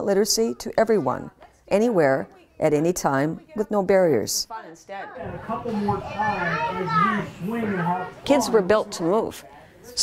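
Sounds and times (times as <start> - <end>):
children chattering and calling out: 4.7 - 10.0.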